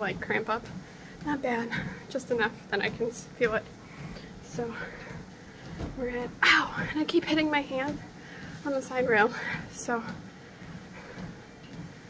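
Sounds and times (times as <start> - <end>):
treadmill rumble: 0.0 - 12.0.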